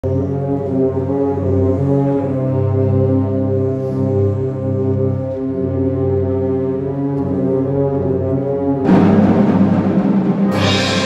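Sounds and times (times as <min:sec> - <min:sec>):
wind band playing slow march: 0:00.1 - 0:11.0.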